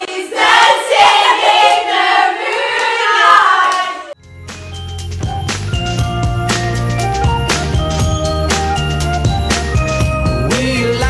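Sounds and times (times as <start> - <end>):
girls singing together: 0.0 - 4.2.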